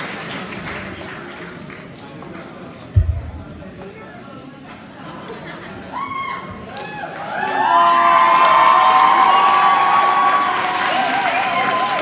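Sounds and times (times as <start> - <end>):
audience applause: 0.0 - 1.9, 7.0 - 12.0.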